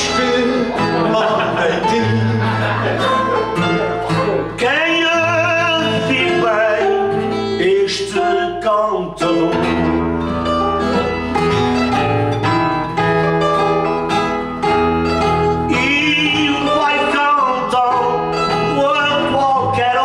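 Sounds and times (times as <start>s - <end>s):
man singing with vibrato: 0.0s - 11.0s, 15.3s - 20.0s
plucked guitars: 0.0s - 20.0s.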